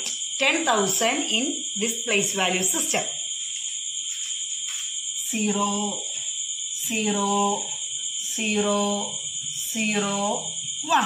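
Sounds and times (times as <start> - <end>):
steady high-pitched whine: 0.0 - 11.0.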